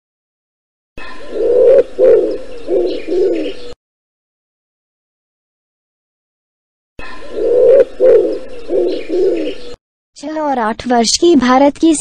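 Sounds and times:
pigeon cooing: 1.0s - 3.8s, 7.0s - 9.8s.

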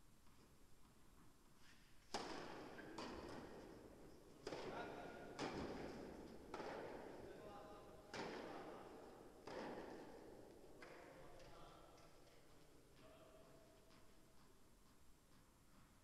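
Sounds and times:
tennis ball struck by rackets: 2.1s - 7.3s, 8.0s - 11.1s.

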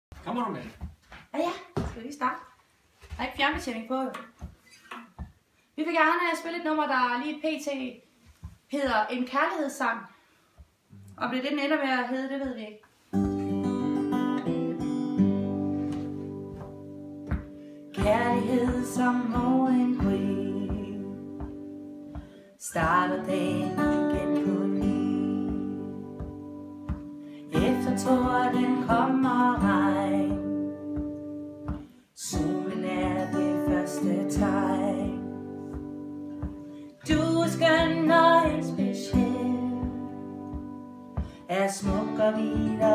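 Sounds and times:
acoustic guitars strumming chords: 13.1s - 42.9s.

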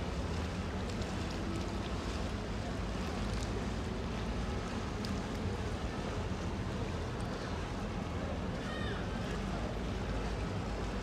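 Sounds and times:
low rumble of boat traffic: 0.0s - 11.0s.

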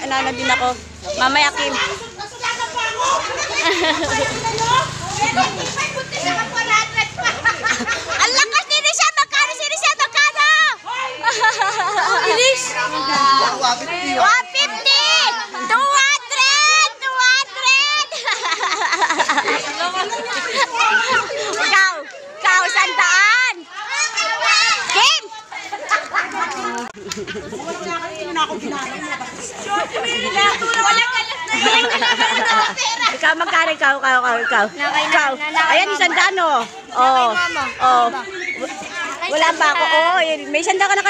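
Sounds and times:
crowd shouting and chattering: 0.0s - 41.0s.

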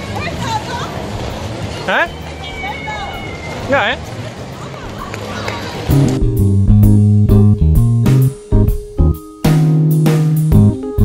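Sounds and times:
hubbub of indoor ice rink: 0.0s - 5.9s.

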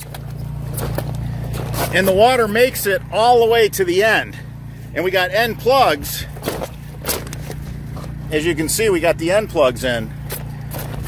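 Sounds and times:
low motor hum: 0.0s - 11.0s.

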